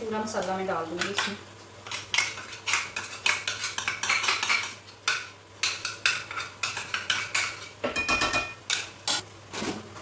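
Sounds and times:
chicken frying: 0.0 - 7.9
wooden spoon scraping a pot: 1.1 - 7.8.

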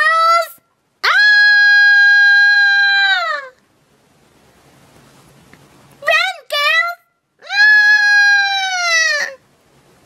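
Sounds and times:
long high-pitched scream: 1.0 - 3.6.

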